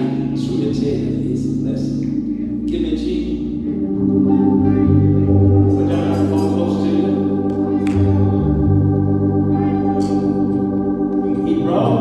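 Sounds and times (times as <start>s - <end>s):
sustained organ chords: 0.0s - 12.0s
voices singing: 3.8s - 12.0s.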